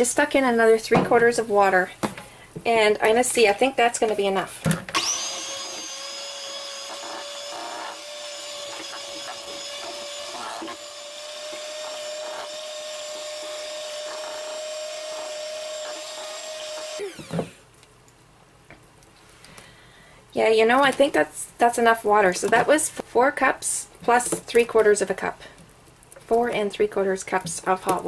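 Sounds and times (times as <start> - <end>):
electric hand mixer whining: 5.0 - 17.6.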